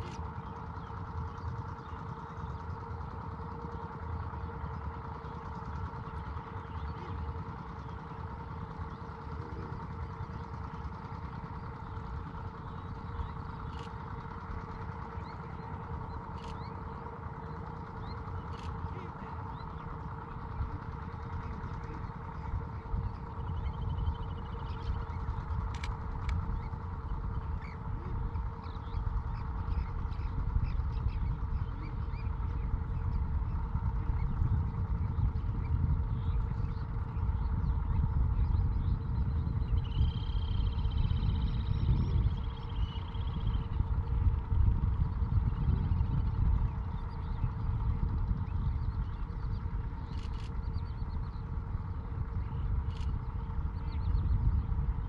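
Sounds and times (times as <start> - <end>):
faint bird calls: 0.0 - 55.0
steady hum: 0.0 - 55.0
wind buffeting microphone: 6.2 - 55.0.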